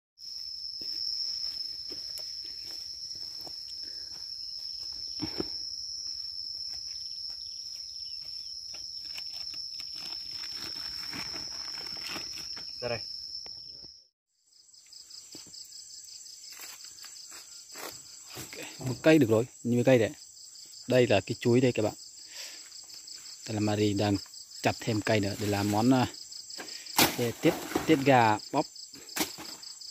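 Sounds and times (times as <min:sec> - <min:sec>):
high-pitched insect drone: 0:00.2 - 0:25.1
fast-pulsing insect trill: 0:00.2 - 0:29.0.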